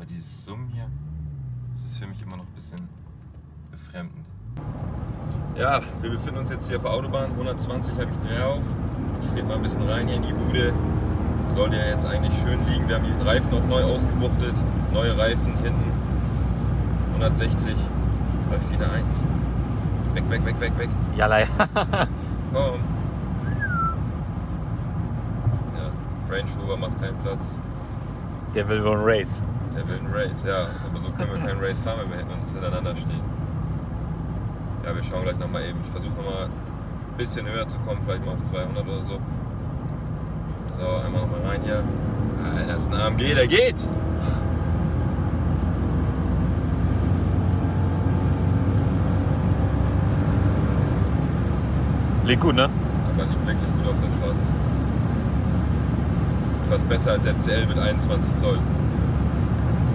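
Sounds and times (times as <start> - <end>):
car cabin road rumble: 0.0 - 59.9
faint falling whistle tone: 23.4 - 24.0.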